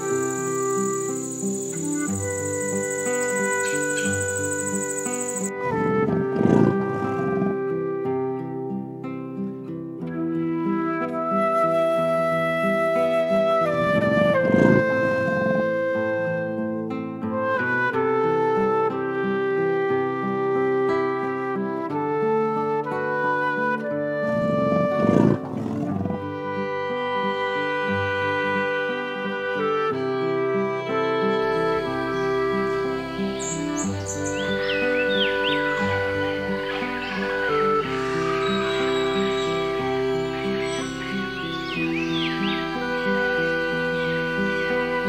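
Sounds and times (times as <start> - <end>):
background music: 0.0 - 45.0
big cat roaring: 25.0 - 26.2.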